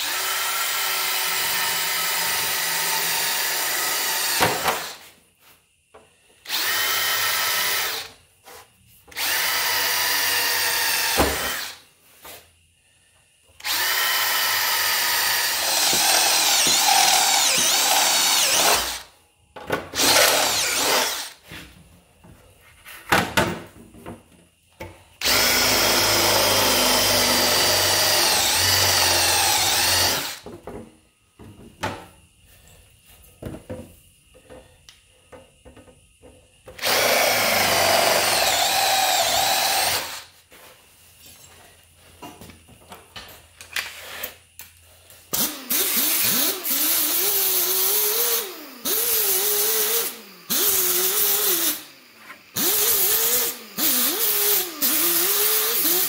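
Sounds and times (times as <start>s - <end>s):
cordless drill boring steel: 0.0s - 5.0s, 6.4s - 8.2s, 9.1s - 11.8s, 13.6s - 19.1s, 20.0s - 21.4s, 25.2s - 30.4s, 36.8s - 40.3s, 45.3s - 56.0s.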